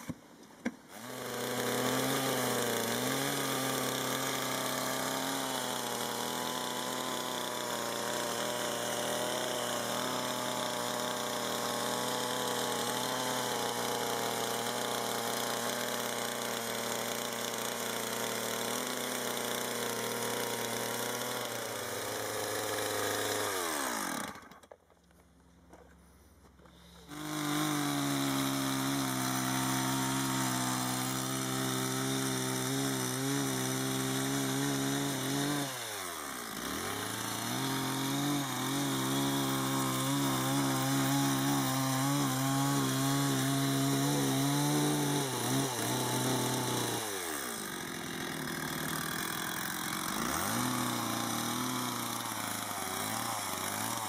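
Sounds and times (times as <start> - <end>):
chainsaw running: 0.0 - 25.2, 26.6 - 54.0.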